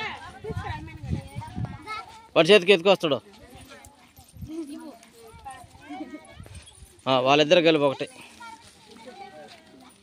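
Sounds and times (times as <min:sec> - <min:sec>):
children and women chattering: 0:00.0 - 0:10.0.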